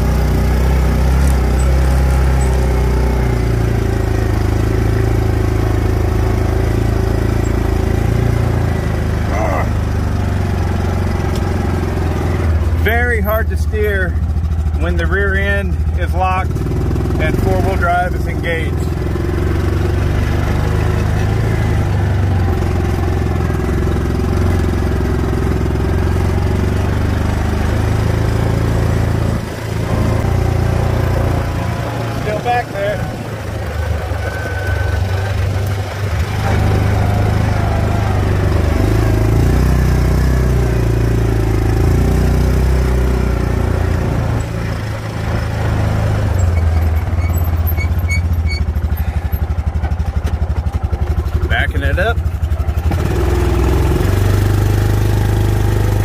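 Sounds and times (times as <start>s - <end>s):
vehicle engine running under load: 0.0s - 56.0s.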